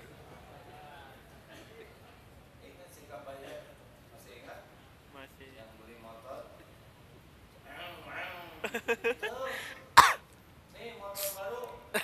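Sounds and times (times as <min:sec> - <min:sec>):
person coughing: 0:10.0 - 0:10.2.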